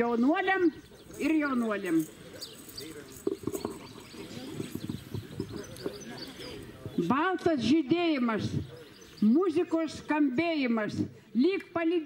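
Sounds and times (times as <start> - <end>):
distant voices: 0.0 - 7.6.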